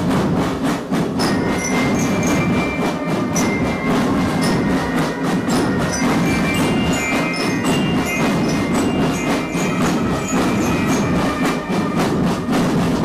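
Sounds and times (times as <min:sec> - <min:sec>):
marching drums: 0:00.0 - 0:13.0
brass horns and trumpets: 0:01.2 - 0:13.0.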